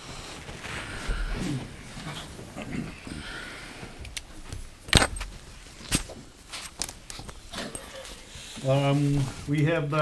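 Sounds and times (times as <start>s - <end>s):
rustling: 0.0s - 10.0s
faint murmurs: 0.1s - 4.0s.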